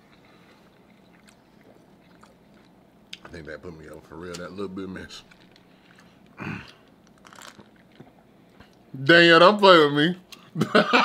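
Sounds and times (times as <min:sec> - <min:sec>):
quiet chewing: 0:00.0 - 0:04.6, 0:05.2 - 0:08.9.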